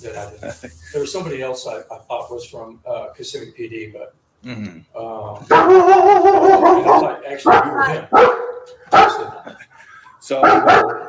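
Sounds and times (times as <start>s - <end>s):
dog barking: 5.5s - 9.4s, 10.4s - 11.0s.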